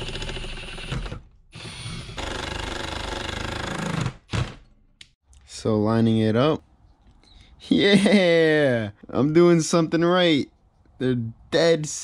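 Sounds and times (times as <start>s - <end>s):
cordless drill boring through steel: 0.0s - 4.0s.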